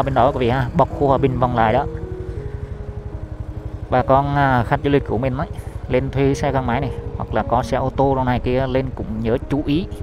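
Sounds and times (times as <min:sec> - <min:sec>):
motor scooter engine running: 0:00.0 - 0:10.0.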